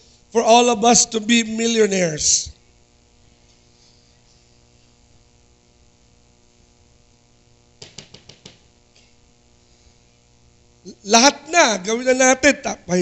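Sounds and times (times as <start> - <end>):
low electrical mains hum: 0.0 - 13.0.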